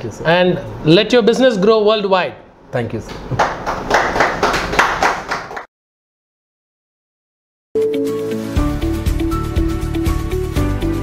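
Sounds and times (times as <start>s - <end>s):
hand clapping: 3.1s - 5.7s.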